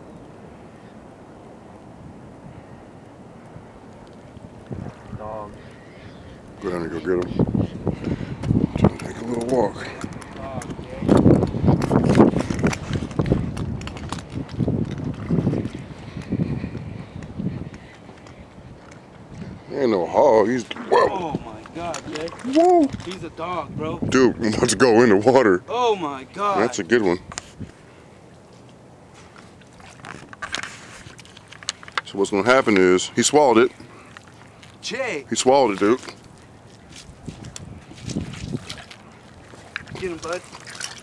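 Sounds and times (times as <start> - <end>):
wind buffeting microphone: 0.0 - 28.0, 32.0 - 41.0
wind rushing: 6.3 - 17.8, 22.8 - 25.0.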